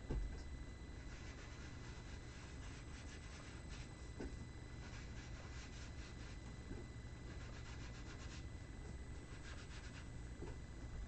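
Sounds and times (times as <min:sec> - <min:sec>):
ink sponge scratching on card: 0:01.0 - 0:03.9, 0:04.8 - 0:06.4, 0:07.3 - 0:08.5, 0:09.2 - 0:10.1.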